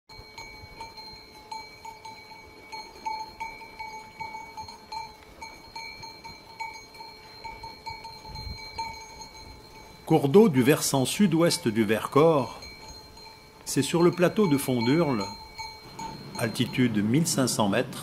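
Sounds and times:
livestock bells ringing: 0.1s - 18.0s.

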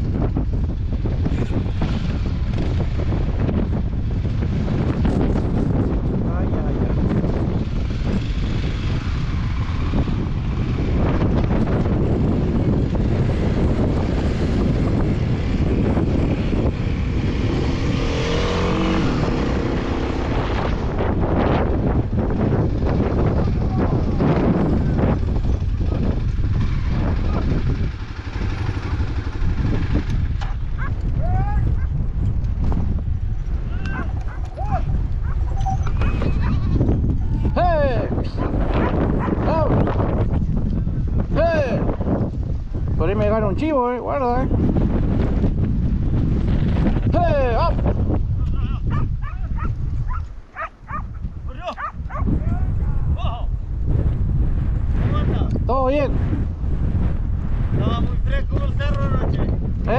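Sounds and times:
motorcycle engine: 0.0s - 53.0s
wind buffeting camera: 0.0s - 59.9s.

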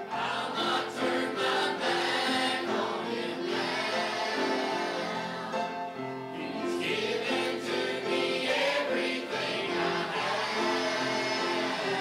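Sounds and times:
congregation singing gospel song: 0.0s - 12.0s.

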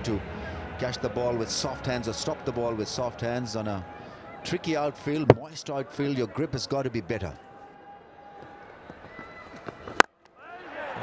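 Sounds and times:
faint stadium background: 0.0s - 11.0s.

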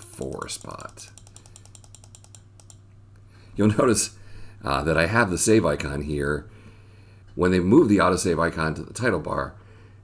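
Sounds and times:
computer mouse clicks: 0.0s - 2.8s.

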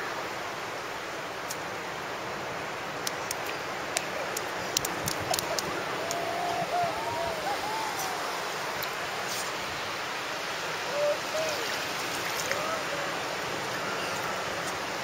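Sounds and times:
ocean surf washing on beach: 0.0s - 15.0s
faint wavering voice: 5.9s - 8.7s.

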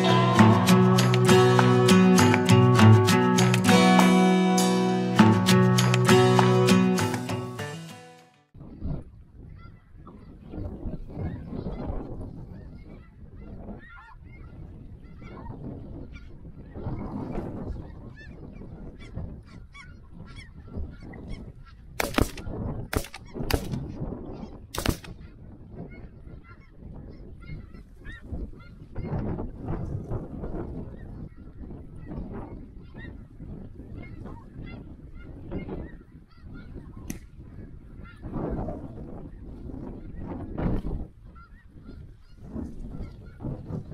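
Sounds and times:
shotgun shots: 22.0s - 23.9s, 24.8s - 25.2s.

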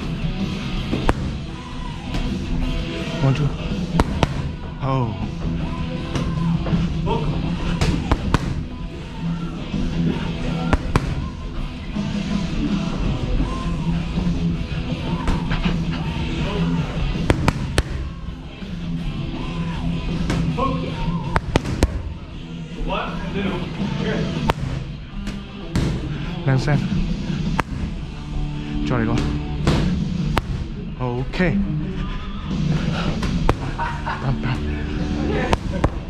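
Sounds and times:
background music: 0.0s - 36.0s
boxing gloves smacking pads: 0.9s - 1.5s, 3.9s - 4.7s, 7.7s - 8.8s, 10.6s - 11.4s, 17.2s - 18.2s, 20.2s - 20.6s, 21.2s - 22.2s, 24.4s - 26.1s, 27.4s - 28.2s, 29.1s - 30.9s, 33.1s - 34.0s, 35.4s - 36.0s.

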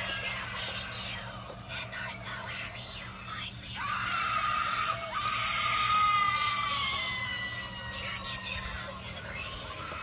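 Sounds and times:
recorded woman screaming: 3.8s - 8.2s.

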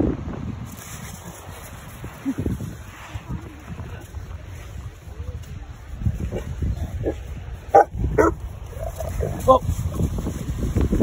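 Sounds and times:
dog barking: 7.0s - 8.4s.

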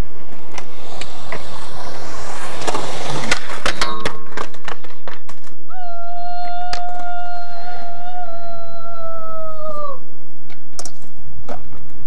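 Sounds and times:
skateboard wheels rolling on concrete: 0.0s - 7.8s, 10.2s - 12.0s
skateboard clacking on ground: 2.6s - 5.7s.

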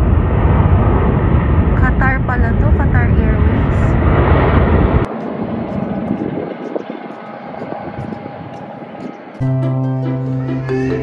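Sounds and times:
distant jet engines rushing: 0.0s - 11.0s.

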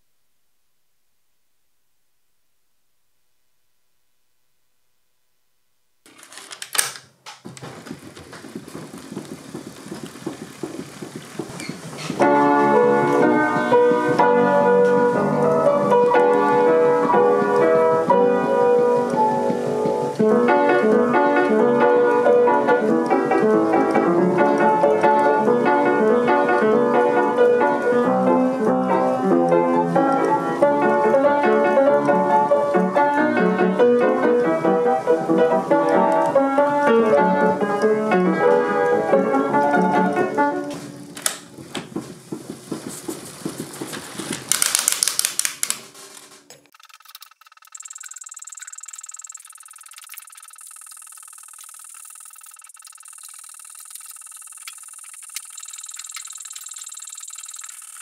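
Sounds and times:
busy piano music: 7.8s - 44.2s.

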